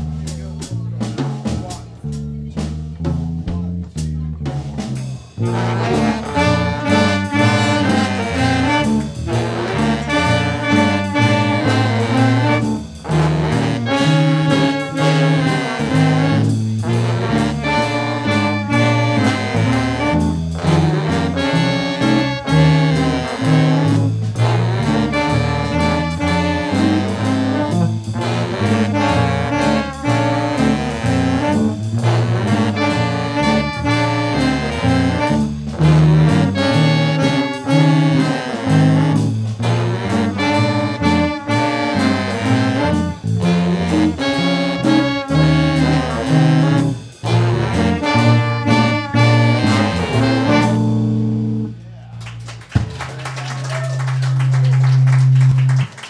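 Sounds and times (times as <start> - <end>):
jazz ensemble playing: 0.0 - 56.0
long low note: 5.4 - 52.0.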